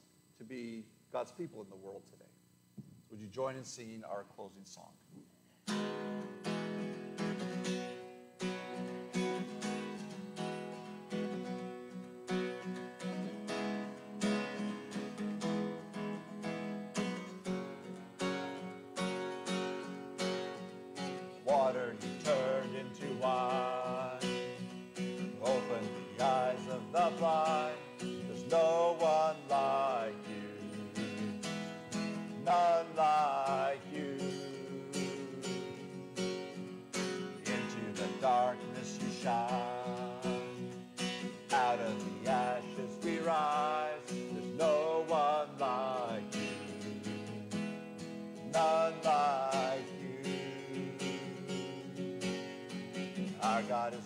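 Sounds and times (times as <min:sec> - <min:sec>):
acoustic guitar strumming: 0:05.6 - 0:54.0
man singing: 0:21.4 - 0:24.6, 0:25.2 - 0:31.2, 0:32.2 - 0:36.0, 0:37.3 - 0:46.8, 0:48.4 - 0:52.0, 0:53.3 - 0:54.0.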